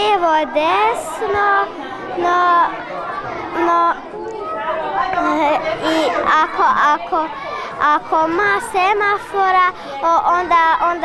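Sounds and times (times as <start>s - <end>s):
girl speaking: 0.0s - 2.7s, 5.1s - 11.0s
children chattering: 0.0s - 11.0s.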